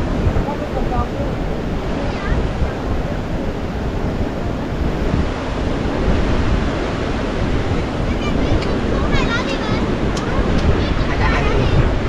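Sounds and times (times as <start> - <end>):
sea surf: 0.0 - 12.0
wind buffeting microphone: 0.0 - 12.0.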